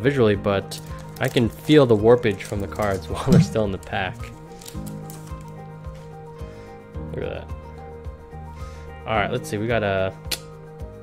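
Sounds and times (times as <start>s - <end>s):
background music with held notes: 0.0s - 11.0s
foil pack rustling: 0.7s - 5.7s
trading cards being handled: 0.8s - 5.6s.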